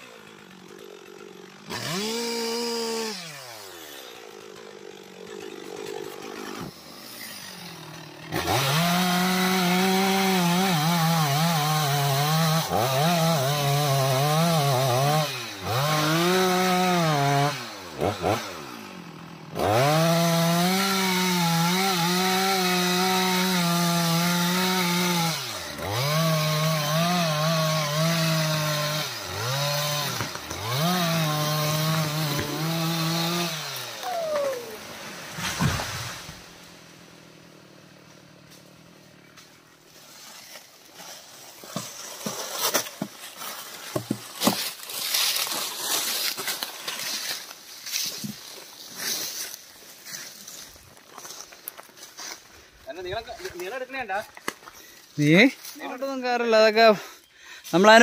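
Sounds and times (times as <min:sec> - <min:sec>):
chainsaw cutting wood: 0:00.0 - 0:52.5.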